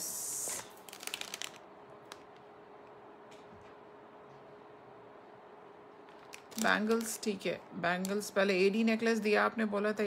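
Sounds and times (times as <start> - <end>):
faint steady hum: 0.0 - 10.0
beads rustling by hand: 0.8 - 2.3.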